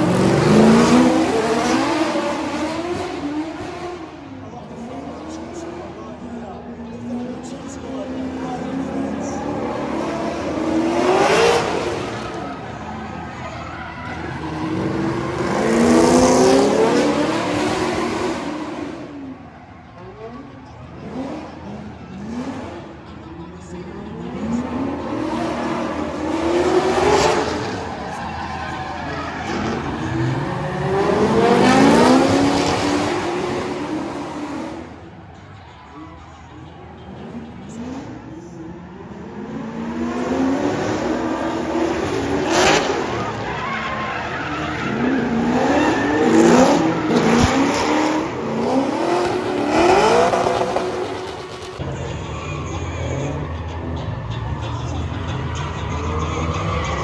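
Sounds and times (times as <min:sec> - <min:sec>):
car engines revving: 0:00.0 - 0:57.0.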